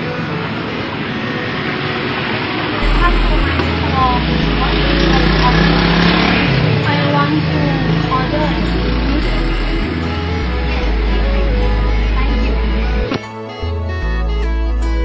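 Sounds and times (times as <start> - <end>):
street traffic noise: 0.0 - 15.0
stepped bass line music: 2.8 - 6.9, 8.0 - 15.0.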